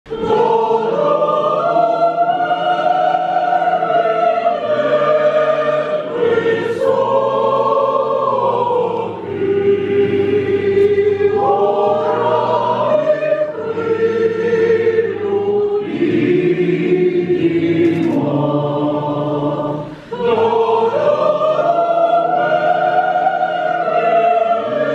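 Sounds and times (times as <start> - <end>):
folk choir singing in harmony: 0.1 - 24.9.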